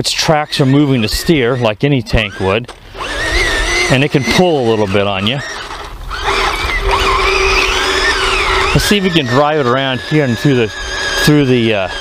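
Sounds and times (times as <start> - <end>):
toy tank motors whining: 0.0 - 12.0.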